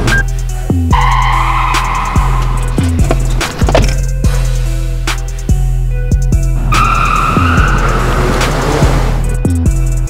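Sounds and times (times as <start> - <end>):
music with deep bass: 0.0 - 10.0
car tyres screeching: 0.7 - 4.3, 6.4 - 9.5.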